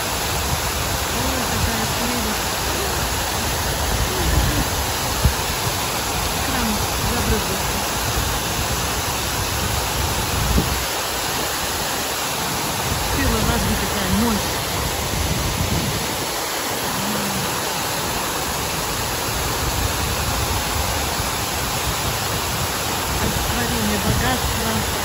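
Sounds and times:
fountain water splashing: 0.0s - 25.0s
wind bumps on microphone: 0.4s - 11.5s, 12.8s - 16.4s
faint voices: 1.2s - 4.8s.

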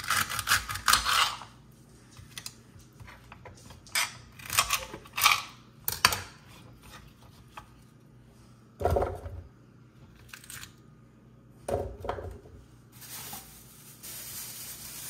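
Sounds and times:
knife cutting celery: 0.0s - 1.5s.

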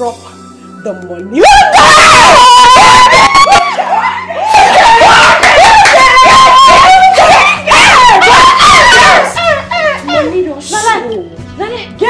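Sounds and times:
women squealing and laughing: 1.4s - 10.4s.

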